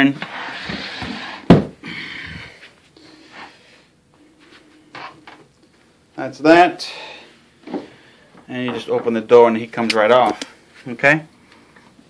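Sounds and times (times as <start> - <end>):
heavy thump: 0.7 - 1.8.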